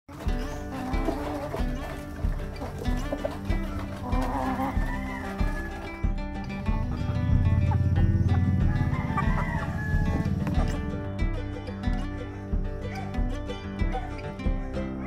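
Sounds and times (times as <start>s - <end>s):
background music with steady beat: 0.1s - 15.0s
rooster crowing: 3.7s - 6.6s, 8.0s - 10.6s.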